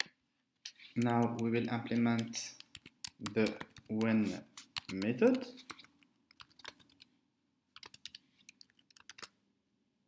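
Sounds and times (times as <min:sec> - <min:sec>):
typing on computer keyboard: 0:01.0 - 0:07.1, 0:07.8 - 0:09.4.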